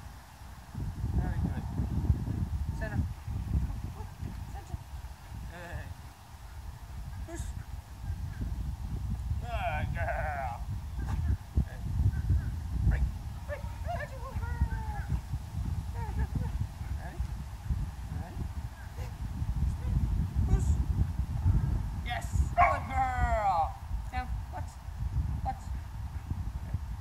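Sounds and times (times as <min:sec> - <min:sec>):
steady low rumble: 0:00.0 - 0:27.0.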